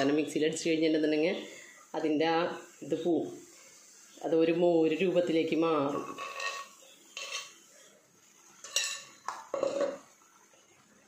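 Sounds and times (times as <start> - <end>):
pot rattling clatter: 6.0 - 7.5, 8.6 - 10.1
pot clinking: 6.0 - 7.6, 8.6 - 10.1
pot knocking: 8.8 - 10.0.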